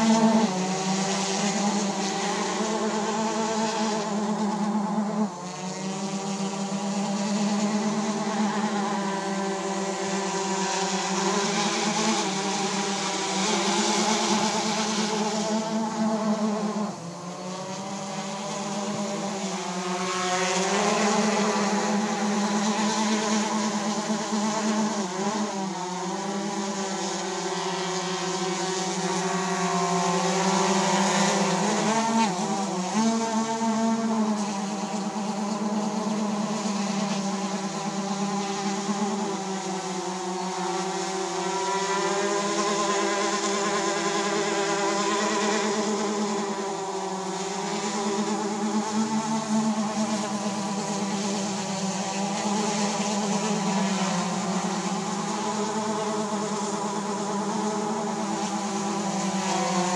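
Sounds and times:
drone propellers droning: 0:00.0 - 0:59.9.

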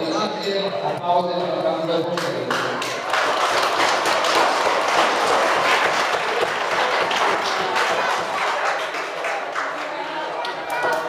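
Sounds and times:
audience applause: 0:02.5 - 0:11.0.

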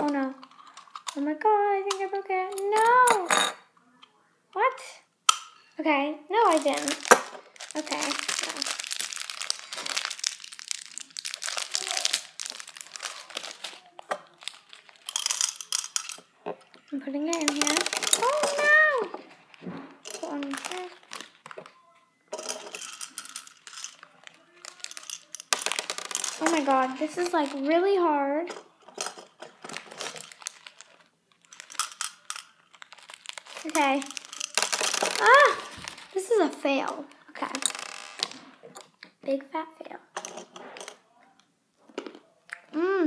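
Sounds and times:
foil packet rustling: 0:06.4 - 0:16.4, 0:17.3 - 0:21.7, 0:22.4 - 0:27.8, 0:28.7 - 0:36.6
candies clicking into plastic dispenser: 0:06.4 - 0:19.2, 0:20.0 - 0:21.8, 0:22.4 - 0:36.2
plastic toy clicks: 0:14.9 - 0:16.2, 0:24.6 - 0:27.5
girl exclaiming: 0:18.2 - 0:19.2, 0:35.2 - 0:35.7.

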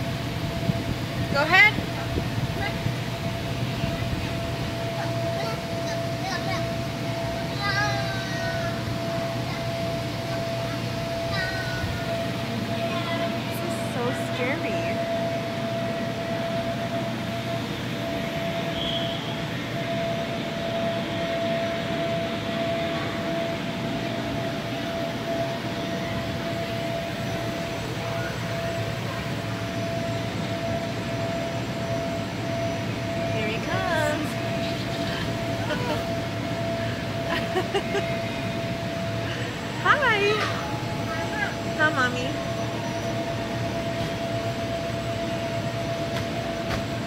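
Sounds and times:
electric air blowers droning: 0:00.0 - 0:47.0
distant children's voices: 0:03.6 - 0:13.9
children calling: 0:05.0 - 0:13.9, 0:34.1 - 0:41.9.

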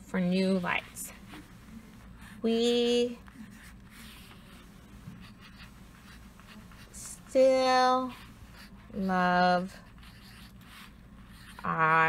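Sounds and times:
pencil scratching on paper: 0:00.3 - 0:12.0.

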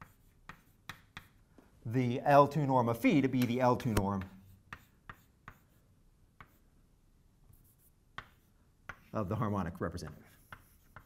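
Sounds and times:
chalk tapping on blackboard: 0:00.0 - 0:01.4, 0:03.4 - 0:05.8, 0:06.4 - 0:06.6, 0:07.5 - 0:09.2, 0:09.8 - 0:11.0.

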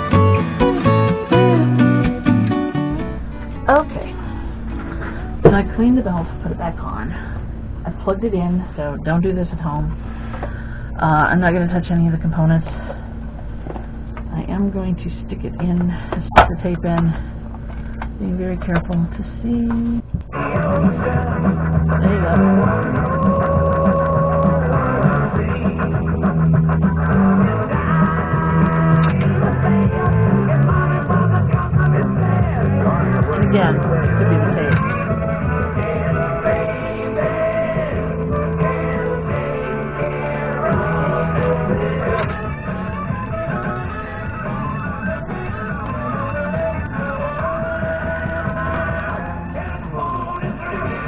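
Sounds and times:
rock music from tape: 0:00.0 - 0:07.3, 0:20.0 - 0:51.0.

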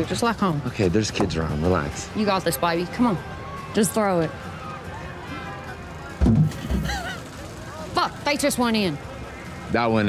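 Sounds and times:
background music: 0:00.0 - 0:10.0
crowd noise: 0:00.0 - 0:10.0
loud low thud: 0:06.2 - 0:06.9
burst of laughter: 0:06.6 - 0:07.3.

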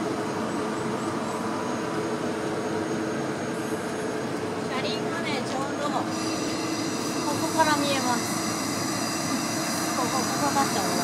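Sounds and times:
electric locomotive high whine: 0:00.0 - 0:11.0
wheels running on rail: 0:00.0 - 0:11.0.

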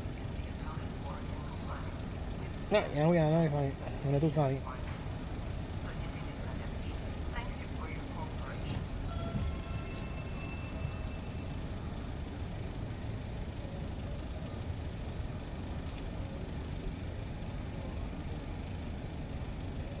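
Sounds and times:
low engine rumble: 0:00.0 - 0:20.0
faint distant voices: 0:03.8 - 0:20.0.

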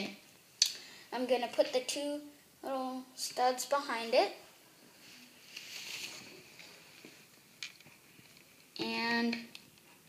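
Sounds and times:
soft rustle: 0:04.6 - 0:08.8.

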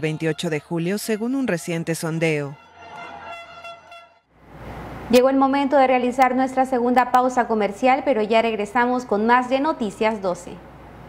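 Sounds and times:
horn steady tone: 0:00.0 - 0:04.4.

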